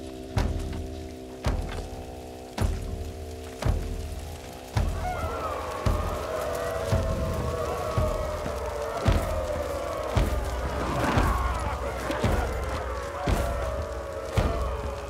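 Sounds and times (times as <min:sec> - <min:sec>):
deep drum struck slowly: 0:00.0 - 0:15.0
wavering chanting voice: 0:04.5 - 0:15.0.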